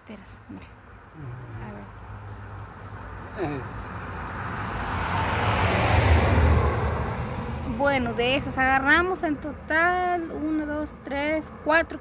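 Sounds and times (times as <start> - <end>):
car driving past: 1.2 - 8.6.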